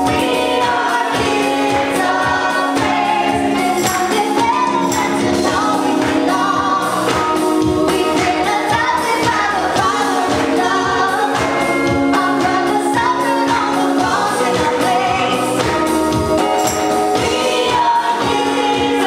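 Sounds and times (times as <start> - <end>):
music with steady beat: 0.0 - 19.0
women singing in harmony: 0.0 - 19.0.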